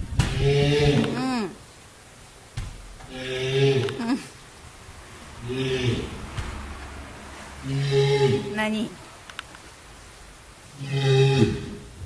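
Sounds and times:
walrus low call: 3.1s - 9.2s.

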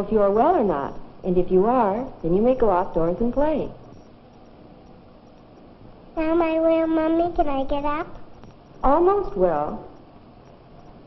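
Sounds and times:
faint low hum: 0.0s - 11.0s
film soundtrack hiss: 0.0s - 11.0s.

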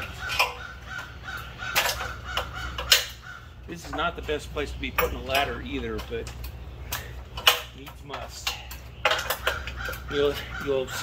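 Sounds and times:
harsh bird calls: 0.0s - 11.0s.

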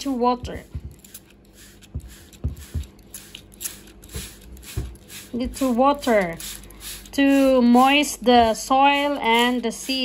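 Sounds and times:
spray bottle spritzing: 0.6s - 8.1s.

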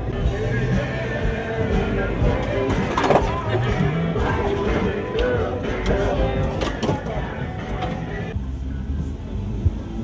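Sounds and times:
background music with singing: 0.0s - 10.0s.

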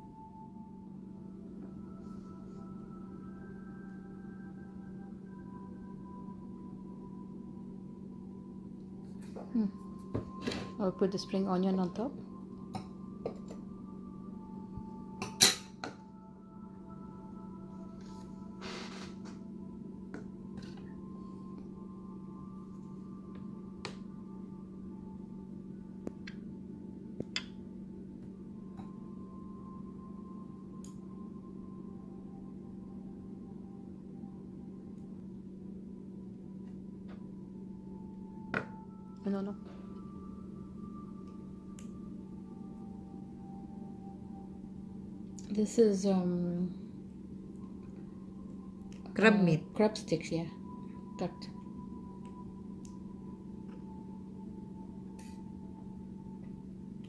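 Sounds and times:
faint held higher tones: 0.0s - 57.0s
low hum: 0.0s - 57.0s.

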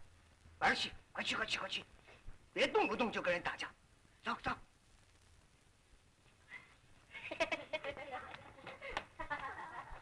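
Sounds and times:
film hiss: 0.0s - 10.0s.

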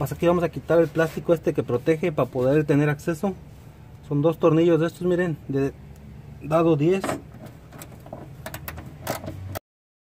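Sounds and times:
low steady hum: 0.0s - 9.6s.

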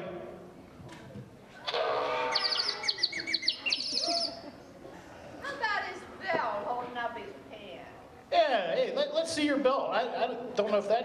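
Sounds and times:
small bird twittering: 2.3s - 4.4s.

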